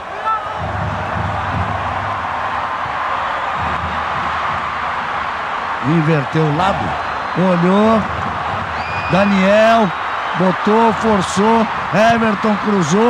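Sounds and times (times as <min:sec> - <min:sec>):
stadium crowd din: 0:00.0 - 0:13.0.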